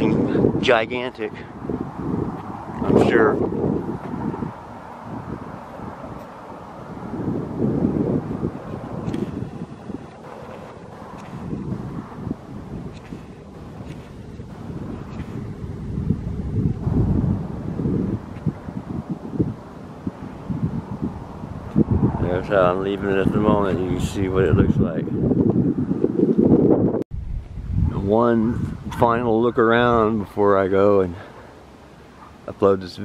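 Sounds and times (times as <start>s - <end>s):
wind on microphone: 0.0s - 32.5s.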